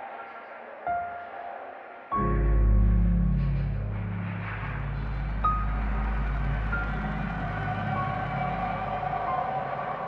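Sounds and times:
ambient drone music: 2.2 - 10.0.

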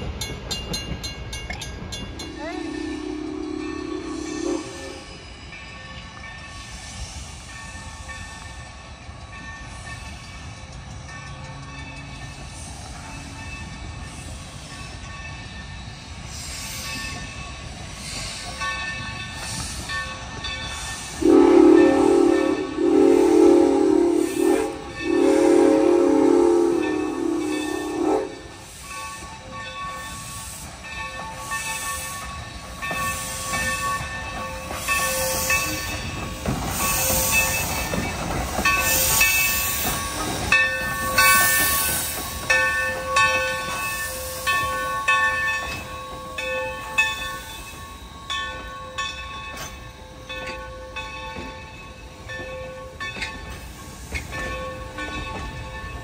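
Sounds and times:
steam locomotive chuffing: 0.0 - 56.0
steam whistle blasts: 2.3 - 5.2, 21.2 - 28.7.

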